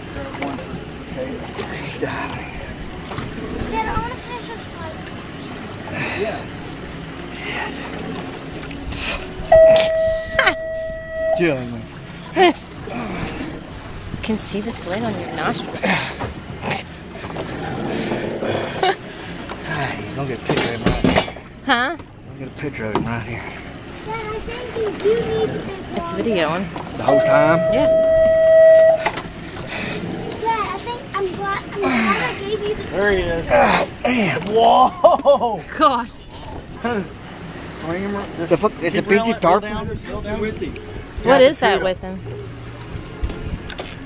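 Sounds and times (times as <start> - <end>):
steady tone: 9.5 - 12.1, 27.0 - 29.6
people's voices: 23.4 - 28.4.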